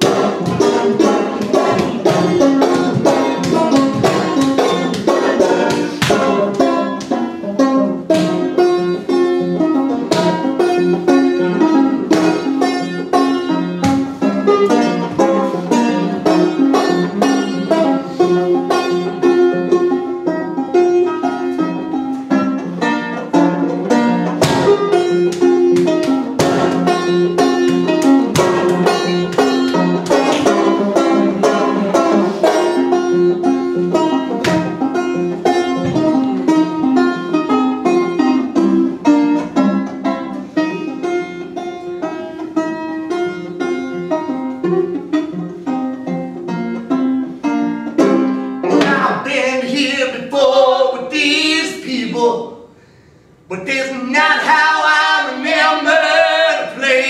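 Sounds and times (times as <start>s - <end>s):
banjo picking: 0.0s - 52.8s, 53.5s - 57.0s.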